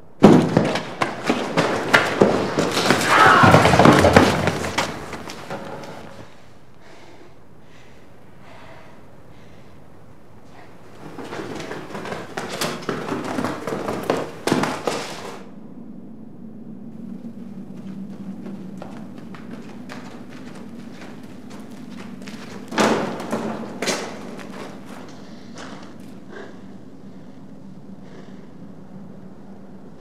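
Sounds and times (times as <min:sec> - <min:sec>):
clattering knocks and thumps: 0:00.2 - 0:06.4, 0:10.9 - 0:15.4, 0:18.4 - 0:26.2
steady low hum: 0:04.2 - 0:30.0.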